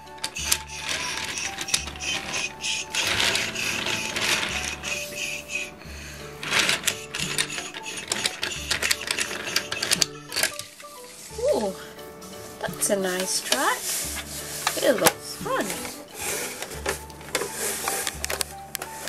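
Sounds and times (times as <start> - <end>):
toy train wheels rattling on track: 0.0 - 11.3, 12.6 - 19.0.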